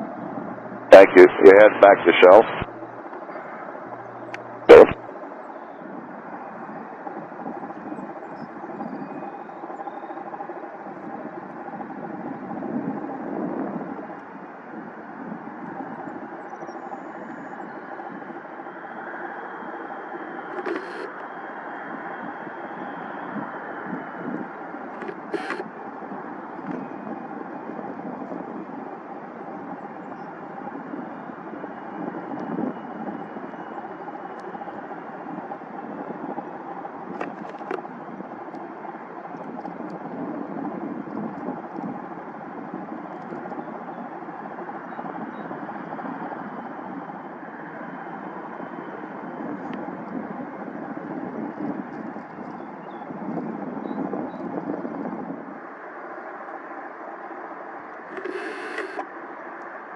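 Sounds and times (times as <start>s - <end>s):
jet engines idling: 0.0s - 53.2s, 55.4s - 59.9s
thin engine whine: 58.1s - 59.1s.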